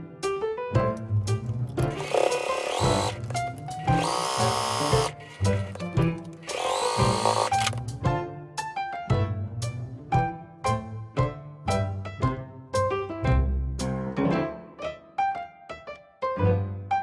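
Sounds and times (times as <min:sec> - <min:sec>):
light background music: 0:00.0 - 0:17.0
sewing machine stitching: 0:01.4 - 0:07.8.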